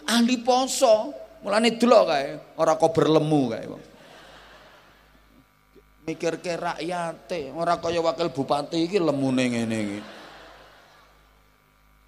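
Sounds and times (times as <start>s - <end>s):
man's amplified voice reverberating: 0.0s - 4.0s, 6.0s - 10.3s
faint electrical hum: 0.0s - 12.0s.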